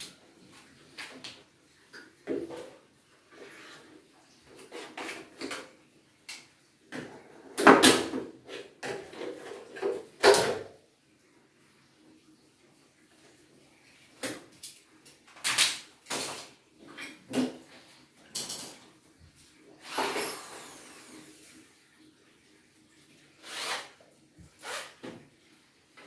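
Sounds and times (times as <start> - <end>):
knocks and clatters of tools: 7.0 - 10.7, 14.2 - 17.7, 18.3 - 18.9.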